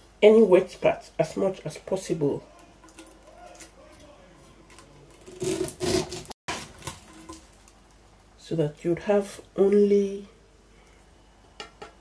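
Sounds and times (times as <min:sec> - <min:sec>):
knife cutting pineapple: 0:05.1 - 0:07.4.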